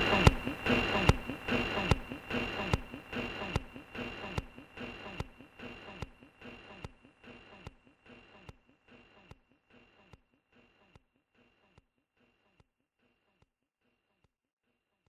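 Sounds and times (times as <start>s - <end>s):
faint high whine: 0.0s - 7.4s.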